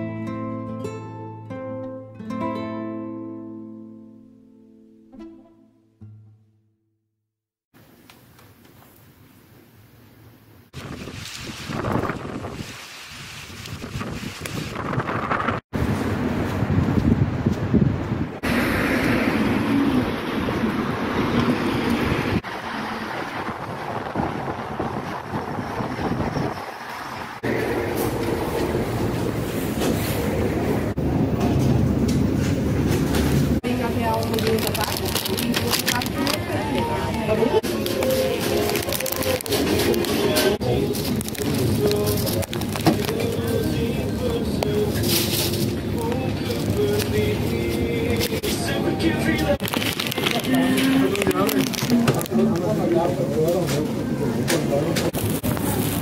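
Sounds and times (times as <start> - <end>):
noise: 53.9 - 56.0.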